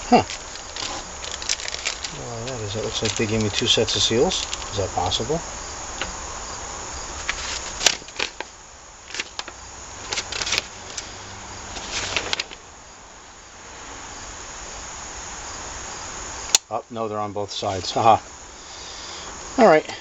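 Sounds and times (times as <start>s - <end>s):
plastic bags crinkling: 0.0s - 4.8s, 7.2s - 8.5s, 9.1s - 11.0s
steady hiss: 0.0s - 20.0s
paper sheet unfolding: 0.2s - 4.8s, 7.2s - 8.5s, 9.1s - 11.0s, 11.7s - 12.6s.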